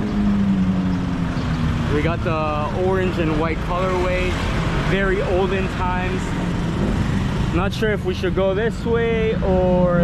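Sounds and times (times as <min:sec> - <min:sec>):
street traffic rumble: 0:00.0 - 0:10.0
vehicle engine humming: 0:00.0 - 0:10.0.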